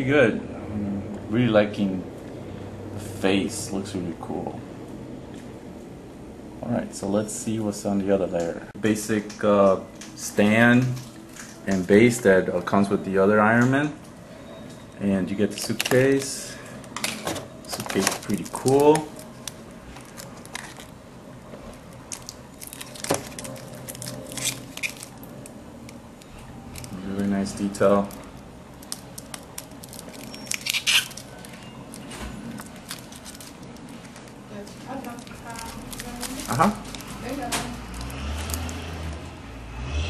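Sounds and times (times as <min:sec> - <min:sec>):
plastic bag crinkling: 0:15.4 - 0:16.3, 0:17.0 - 0:39.2.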